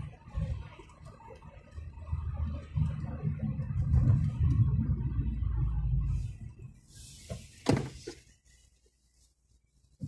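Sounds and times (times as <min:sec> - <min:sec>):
car interior road and engine noise: 0:00.0 - 0:10.0.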